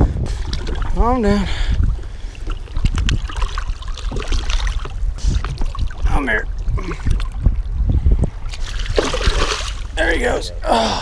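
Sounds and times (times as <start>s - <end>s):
water splashing and sloshing: 0.0s - 10.4s
steady low rumble: 0.0s - 11.0s.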